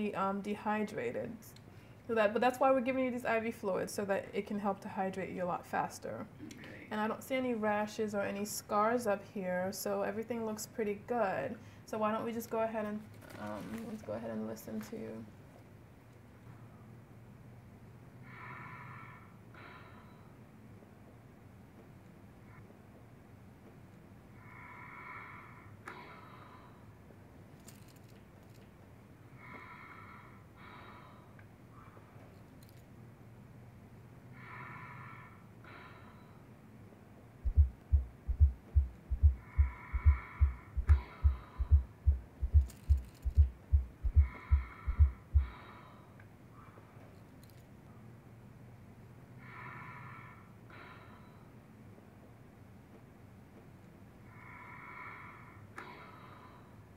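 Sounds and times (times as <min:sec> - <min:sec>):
soft breath sounds: 0:18.2 - 0:21.0, 0:24.3 - 0:32.9, 0:34.2 - 0:36.7, 0:37.4 - 0:48.0, 0:49.3 - 0:51.8, 0:54.1 - 0:56.9
deep heartbeat thuds: 0:37.4 - 0:45.6.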